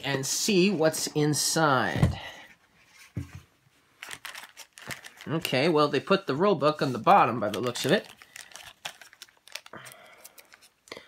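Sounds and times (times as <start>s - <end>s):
plastic bag crinkling: 4.0s - 5.6s, 7.0s - 11.0s.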